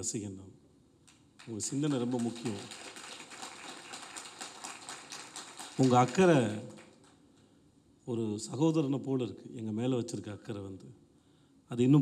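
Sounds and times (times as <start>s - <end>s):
man speaking into a microphone: 0.0s - 0.5s, 1.5s - 2.8s, 5.8s - 6.8s, 8.1s - 11.0s, 11.7s - 12.0s.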